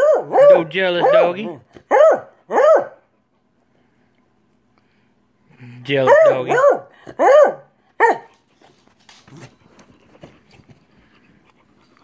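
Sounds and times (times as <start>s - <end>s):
dog yelping barks: 0.0s - 3.0s, 6.0s - 8.3s.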